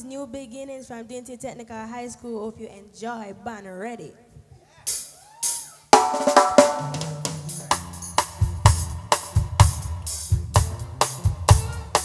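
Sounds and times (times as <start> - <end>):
band playing: 4.9 - 12.0
drum kit beat: 4.9 - 12.0
bass line: 6.0 - 12.0.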